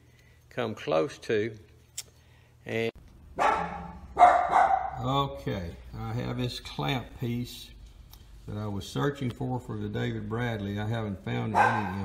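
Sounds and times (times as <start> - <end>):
dog barking: 3.4 - 5.0, 11.5 - 12.0.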